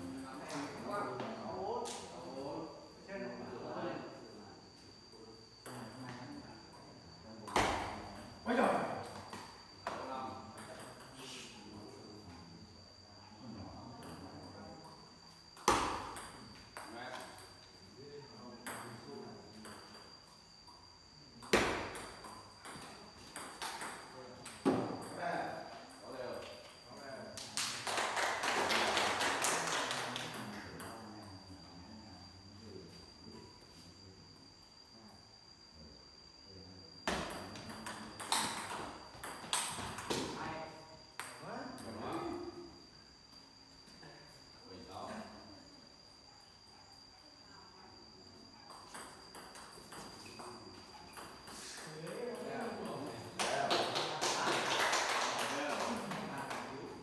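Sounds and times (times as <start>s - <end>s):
ball bouncing on table: 7.5s - 8.2s, 15.6s - 16.9s, 21.4s - 25.2s, 37.1s - 40.3s
ping pong ball hitting paddles: 7.5s - 8.2s, 15.6s - 17.6s, 21.4s - 25.2s, 37.0s - 40.3s.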